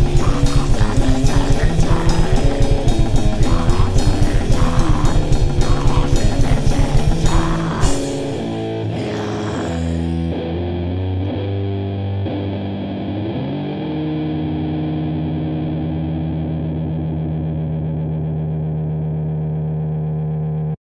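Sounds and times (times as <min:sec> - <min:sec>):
distorted electric guitar: 0:00.0 - 0:20.8.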